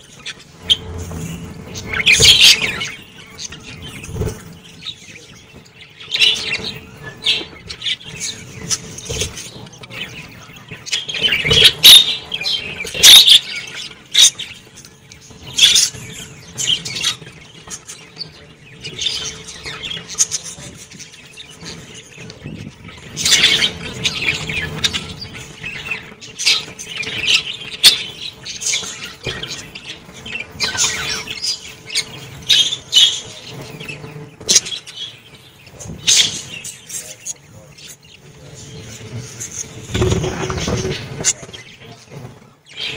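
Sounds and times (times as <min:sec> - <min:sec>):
wings fluttering: 0:00.0 - 0:37.2, 0:37.8 - 0:42.9
budgerigars chirping and chattering: 0:00.0 - 0:42.9
loud sharp bird calls: 0:00.0 - 0:42.9.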